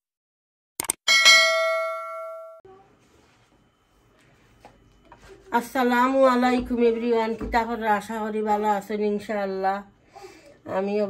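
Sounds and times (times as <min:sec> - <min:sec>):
bright bell ding: 0:01.1 - 0:02.6.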